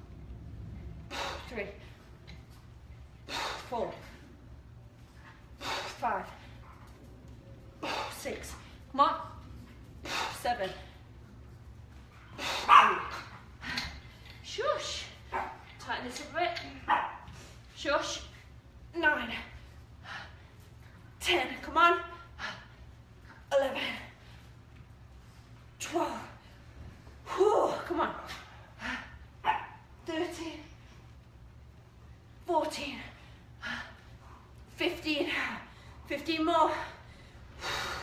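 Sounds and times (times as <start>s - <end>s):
dog barking: 12.7s - 13.1s, 16.9s - 17.2s.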